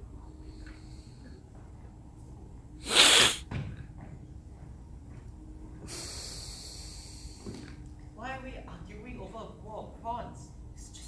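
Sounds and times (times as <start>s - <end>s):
steady high hiss: 2.8s - 3.4s, 5.9s - 7.6s
sneeze-like burst of breath: 2.8s - 3.5s.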